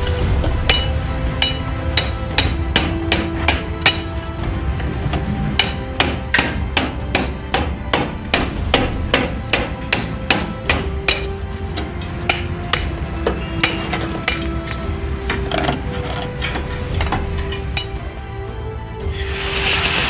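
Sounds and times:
steel rod knocking inside metal: 0:00.7 - 0:04.2, 0:05.1 - 0:18.0.

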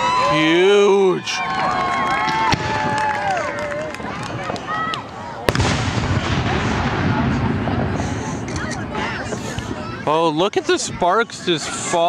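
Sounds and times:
firework bang and rumble: 0:02.3 - 0:03.1, 0:05.5 - 0:10.0.

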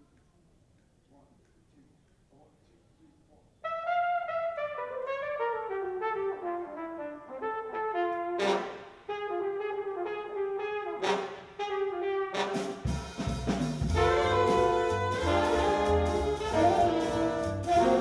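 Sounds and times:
flugelhorn solo: 0:03.6 - 0:12.9, 0:13.8 - 0:18.0
big band jazz playing: 0:03.6 - 0:18.0.

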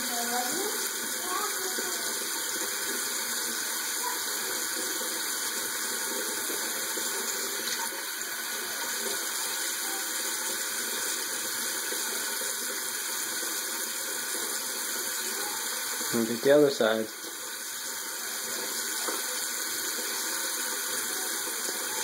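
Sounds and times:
tap water running into sink: 0:00.0 - 0:22.0.

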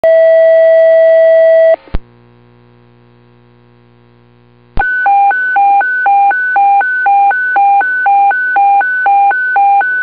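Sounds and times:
paging tone over radio: 0:04.8 - 0:10.0.

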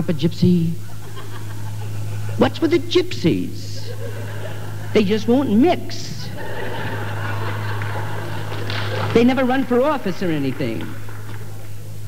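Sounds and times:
low mains hum: 0:00.0 - 0:12.0.

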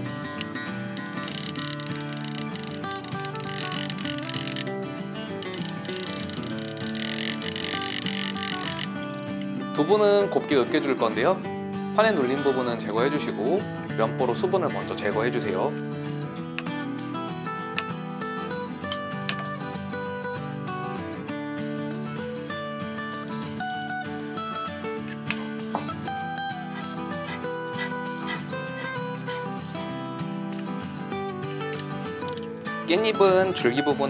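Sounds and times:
light background music: 0:00.0 - 0:34.0.

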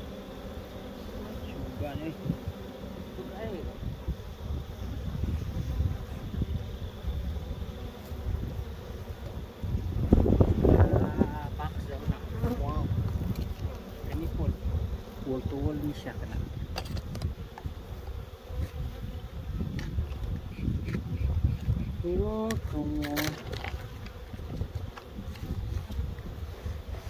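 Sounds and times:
bees buzzing: 0:00.0 - 0:27.0
wind rumbling on microphone: 0:01.4 - 0:02.7, 0:03.3 - 0:27.0.

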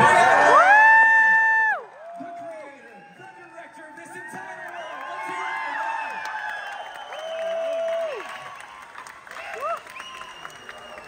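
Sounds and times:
audience cheering and applauding: 0:00.0 - 0:11.0.

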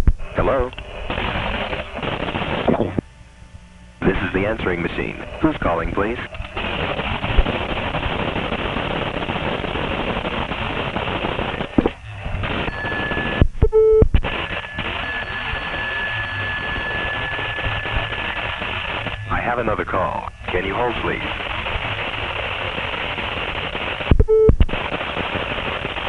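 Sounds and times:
call-waiting beep: 0:12.6 - 0:18.3, 0:24.1 - 0:24.6.

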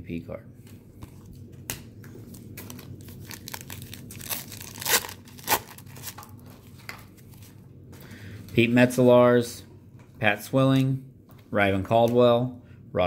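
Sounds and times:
wrapper crinkling and tearing: 0:02.3 - 0:06.4.

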